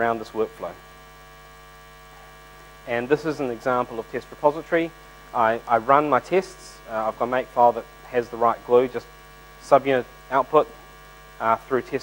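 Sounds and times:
man speaking: 0:00.0 - 0:00.8, 0:02.8 - 0:10.8, 0:11.4 - 0:12.0
electrical mains hum: 0:00.0 - 0:12.0.

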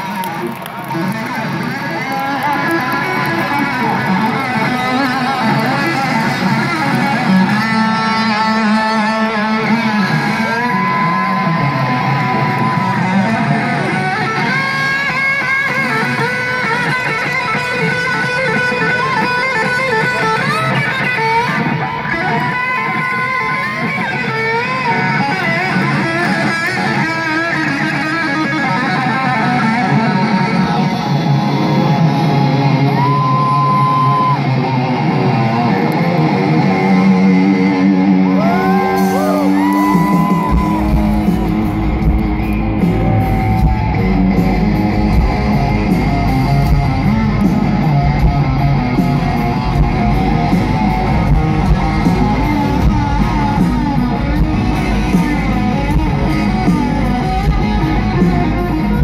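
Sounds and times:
electric guitar solo: 0:00.0 - 0:59.0.

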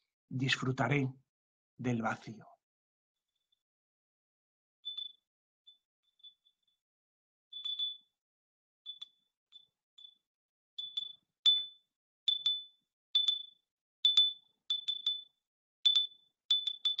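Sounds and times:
small handbell ringing: 0:04.8 - 0:06.7, 0:07.5 - 0:08.2, 0:08.9 - 0:17.0.

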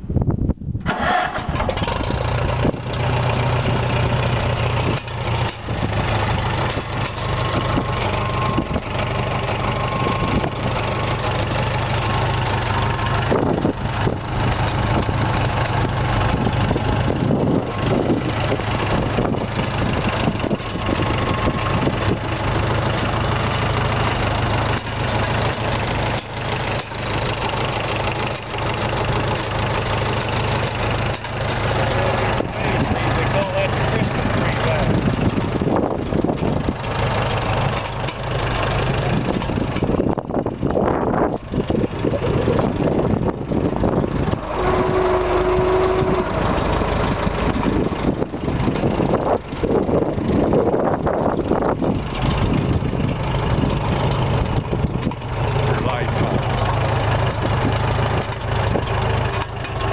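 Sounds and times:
tractor engine starting and idling: 0:00.7 - 0:59.9.

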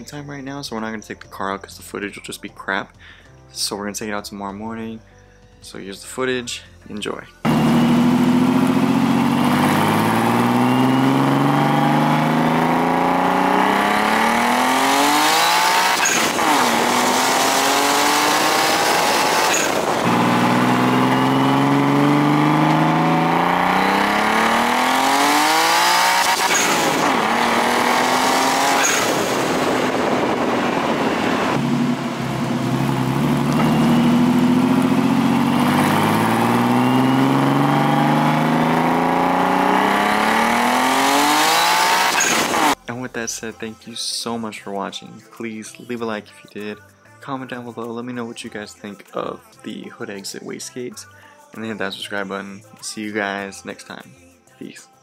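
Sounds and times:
turbocharged car engine accelerating: 0:07.4 - 0:42.8
turbo blow-off rushing: 0:07.5 - 0:42.8.

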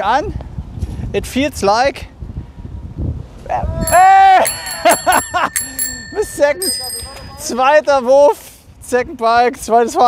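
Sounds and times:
bicycle bell ringing: 0:03.8 - 0:07.8.

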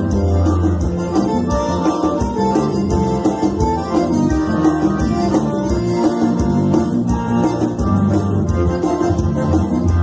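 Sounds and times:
electronic keyboard: 0:00.0 - 0:10.0
piano accordion: 0:00.0 - 0:10.0
steady beat and bass line: 0:00.0 - 0:10.0.

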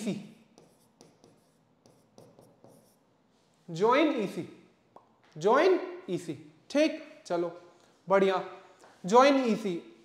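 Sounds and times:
man speaking: 0:00.0 - 0:00.3, 0:03.7 - 0:04.6, 0:05.4 - 0:10.0
stylus tapping and scratching: 0:00.5 - 0:03.0.

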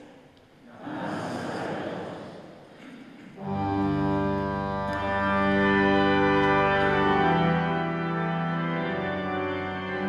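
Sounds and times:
congregation answering in unison: 0:00.6 - 0:03.2
church organ chords: 0:03.4 - 0:10.0.

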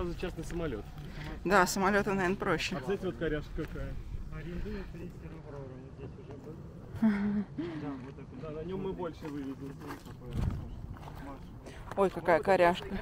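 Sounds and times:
people talking quietly: 0:00.0 - 0:13.0.

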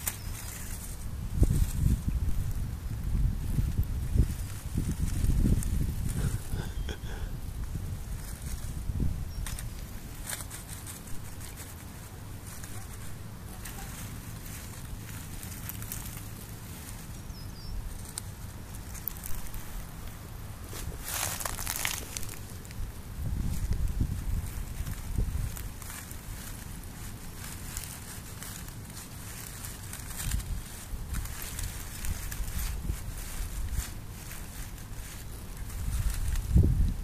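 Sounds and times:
dry grass rustling and crackling: 0:00.0 - 0:37.0
steady low rumble: 0:00.0 - 0:37.0.

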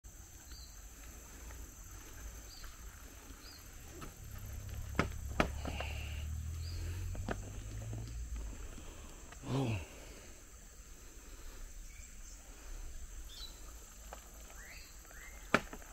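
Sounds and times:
insect chirps: 0:00.0 - 0:15.9
high insect drone: 0:00.1 - 0:15.9.

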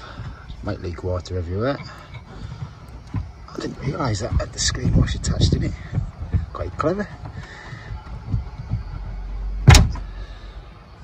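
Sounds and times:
soft bumps against glass: 0:01.8 - 0:10.3
sharp knock: 0:09.6 - 0:10.1.

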